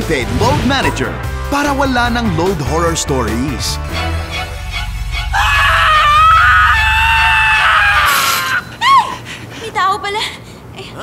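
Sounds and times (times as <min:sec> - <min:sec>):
pulsing horror music drone: 0:03.8 - 0:08.8
high-pitched scream: 0:05.2 - 0:09.1.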